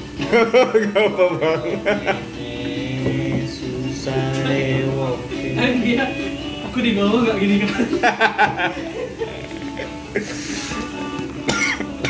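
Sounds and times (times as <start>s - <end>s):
song playing in background: 0.0s - 12.0s
man coughing: 11.4s - 12.0s.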